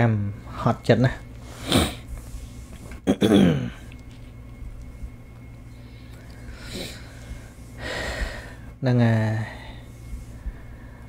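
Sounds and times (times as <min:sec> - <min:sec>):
faint steady hum: 0:00.0 - 0:11.0
man breathing in: 0:05.8 - 0:08.8.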